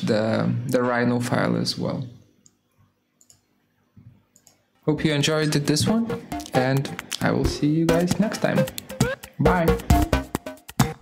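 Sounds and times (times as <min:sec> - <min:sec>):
faint computer mouse clicks: 0:03.2 - 0:03.5.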